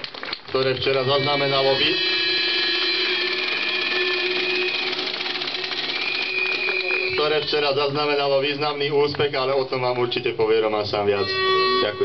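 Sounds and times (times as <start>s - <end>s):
high feedback ringing tone: 0.6s - 9.0s, 9.6s - 12.0s
low feedback ringing tone: 0.8s - 4.9s, 10.1s - 12.0s.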